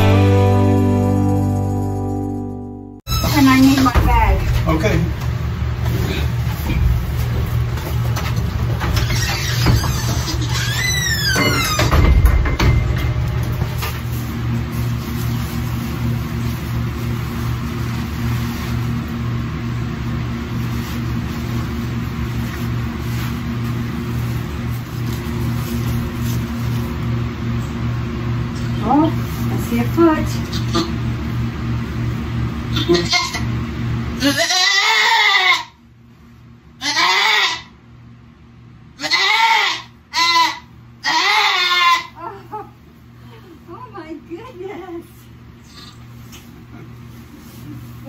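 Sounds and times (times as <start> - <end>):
barn fan humming: 0.0 - 48.0.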